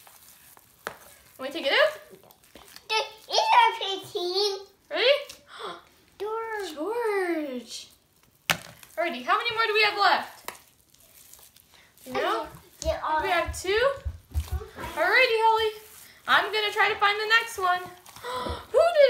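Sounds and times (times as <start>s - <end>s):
hands squishing slime: 0.0s - 1.4s, 10.4s - 18.6s
young child's voice: 2.9s - 4.8s
people talking: 2.9s - 5.4s, 6.2s - 7.9s, 9.0s - 10.4s, 12.1s - 19.0s.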